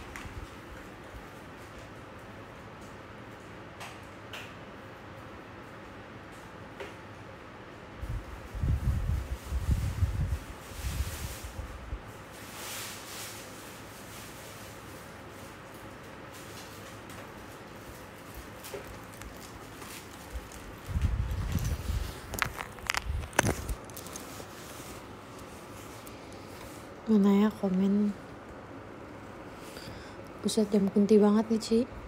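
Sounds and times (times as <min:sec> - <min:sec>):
rustling: 0:08.5 - 0:27.0.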